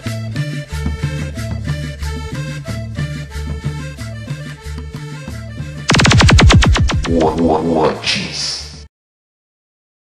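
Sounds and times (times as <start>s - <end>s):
cumbia music: 0.0s - 8.8s
rapid zapping sound effect: 5.9s - 7.7s.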